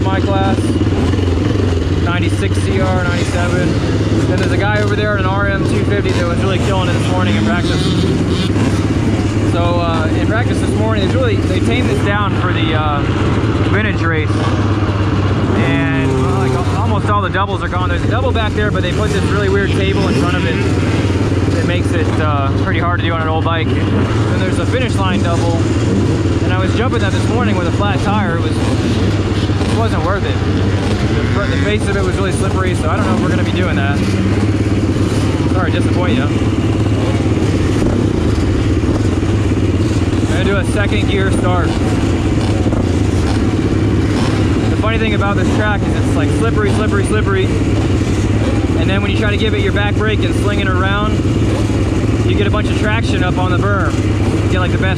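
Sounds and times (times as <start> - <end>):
motorcycle engine idling: 0.0 - 54.9.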